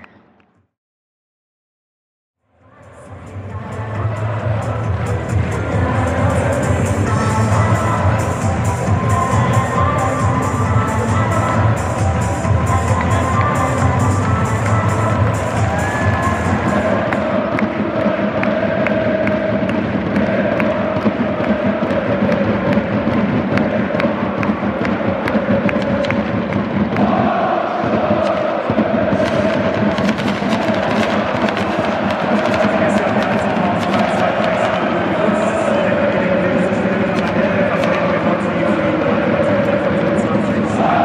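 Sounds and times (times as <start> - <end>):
crowd singing a chant: 2.6 - 41.0
crowd roar: 14.6 - 41.0.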